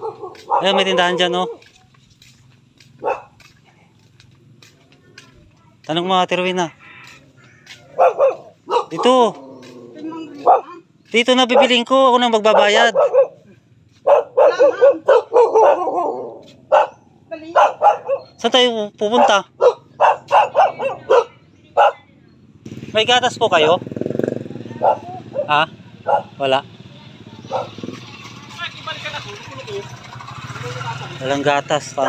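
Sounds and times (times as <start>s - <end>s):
bark-like animal call: 0.0s - 1.6s, 3.0s - 3.4s, 6.8s - 10.8s, 11.5s - 11.8s, 12.5s - 18.4s, 19.1s - 22.1s, 24.6s - 26.4s, 27.4s - 28.1s.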